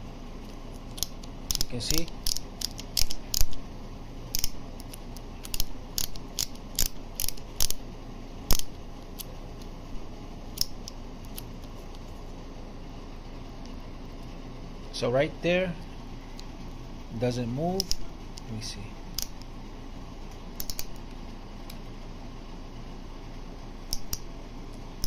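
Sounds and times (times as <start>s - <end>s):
ratchet clicking: 0.9s - 3.6s, 4.3s - 7.8s.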